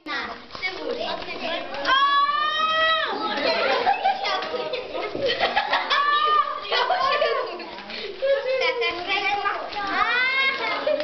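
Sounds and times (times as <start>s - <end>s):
children talking and calling: 0.0s - 11.0s.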